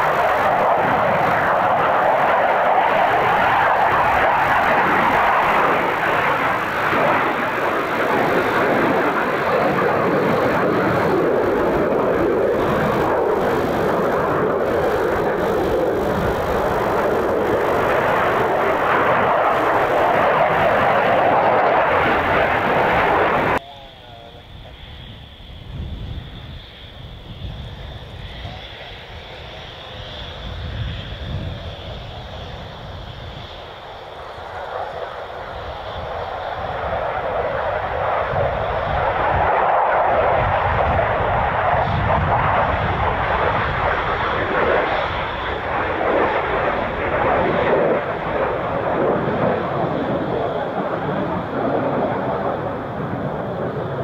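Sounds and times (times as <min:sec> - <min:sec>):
high-pitched turbine whine: 0:00.0 - 0:54.0
jet engine noise: 0:00.0 - 0:54.0.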